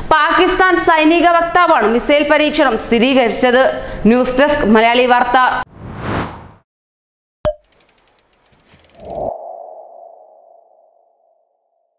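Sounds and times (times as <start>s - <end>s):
quick ticks speeding up: 7.5s - 9.4s.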